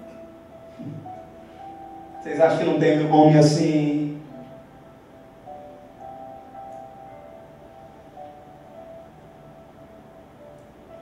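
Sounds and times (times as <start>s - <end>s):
soft sustained background music: 0.0s - 11.0s.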